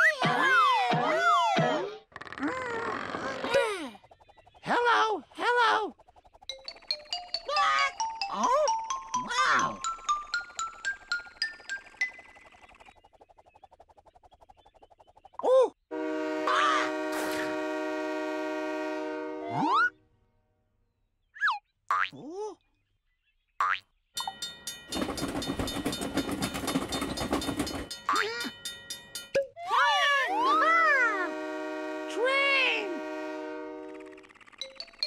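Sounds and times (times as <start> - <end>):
cartoon springy boings: 19.5 - 20.0.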